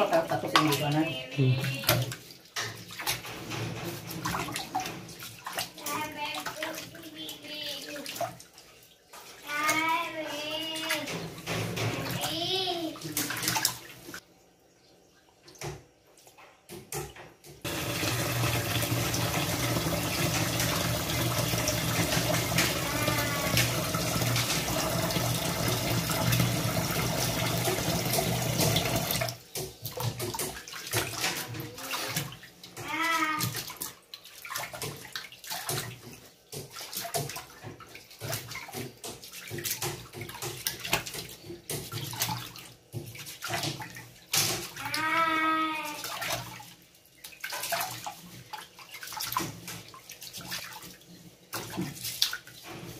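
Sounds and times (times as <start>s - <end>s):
tap water pouring into a pot: 17.6s - 30.6s.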